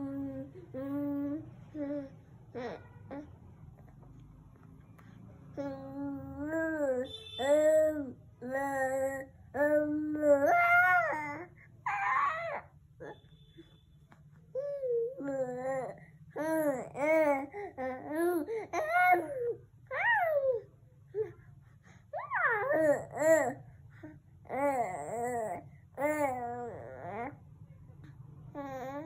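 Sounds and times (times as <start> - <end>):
soft baby vocal sound: 0.0 - 13.7, 14.5 - 29.0
baby cooing: 5.6 - 13.2, 22.2 - 23.6, 24.5 - 27.3
baby squealing: 11.9 - 12.6.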